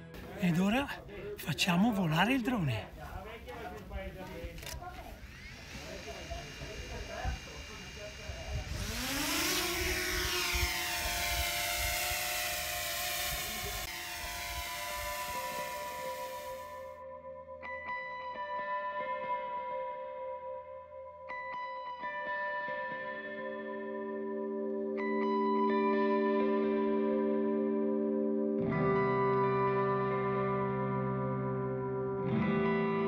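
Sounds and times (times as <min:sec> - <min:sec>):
drone propeller whine and buzz: 0:04.6 - 0:16.9.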